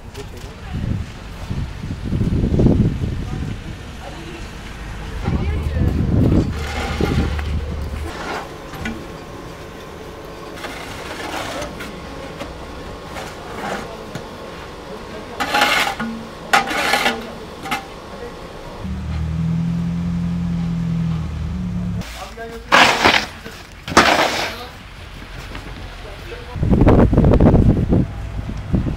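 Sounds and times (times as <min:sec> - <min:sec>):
street noise: 0:00.0 - 0:28.9
low engine hum: 0:00.7 - 0:08.1, 0:18.8 - 0:22.0, 0:26.6 - 0:28.9
snow shovels scraping pavement: 0:06.3 - 0:08.8, 0:10.6 - 0:12.1, 0:13.0 - 0:14.0, 0:15.4 - 0:17.3, 0:22.0 - 0:25.8.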